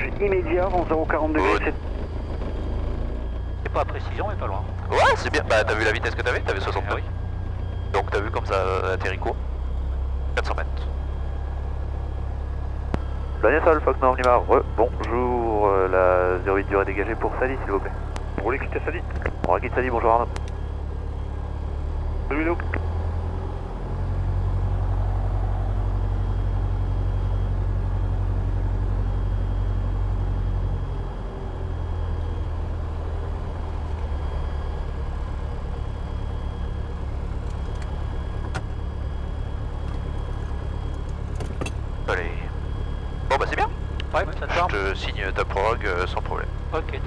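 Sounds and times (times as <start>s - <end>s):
aircraft piston engine drone: 0.0s - 47.0s.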